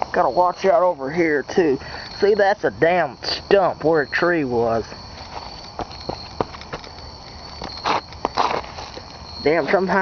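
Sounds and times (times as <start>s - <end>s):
crickets trilling: 0.0s - 10.0s
footsteps crunching on pine straw: 7.5s - 9.2s.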